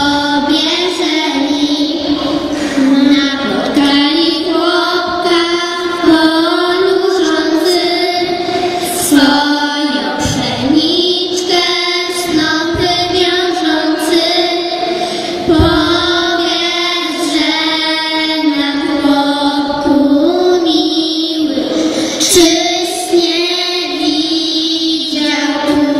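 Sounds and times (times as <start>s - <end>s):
girls singing a carol: 0.0s - 25.9s.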